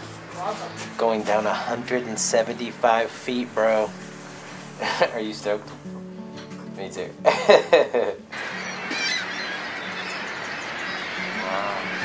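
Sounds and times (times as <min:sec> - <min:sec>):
quiet background music: 0:00.0 - 0:12.0
birds calling: 0:01.5 - 0:12.0
waterfall roar: 0:08.4 - 0:12.0.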